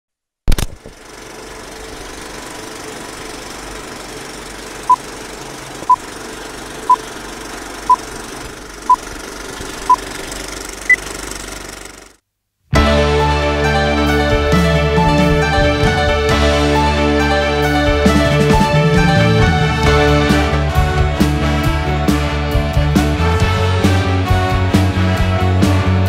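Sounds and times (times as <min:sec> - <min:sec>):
projector mechanical rattle: 0:00.5 - 0:12.2.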